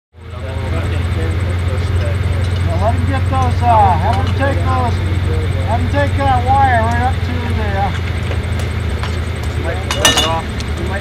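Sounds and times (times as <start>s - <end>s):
man talking: 0.2s - 8.0s, 9.6s - 11.0s
low engine rumble: 0.2s - 11.0s.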